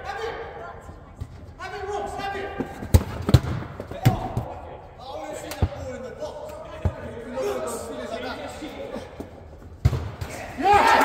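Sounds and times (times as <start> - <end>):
football thuds on indoor court: 2.6 - 4.6, 9.8 - 10.5.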